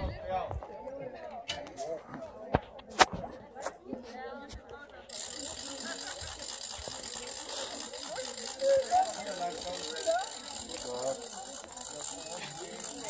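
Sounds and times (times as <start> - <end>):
distant voices talking: 0.0 - 13.0.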